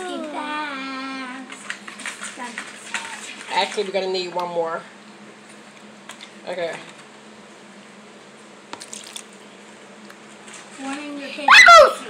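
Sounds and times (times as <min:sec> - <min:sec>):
room hum and hiss: 0:00.0 - 0:12.0.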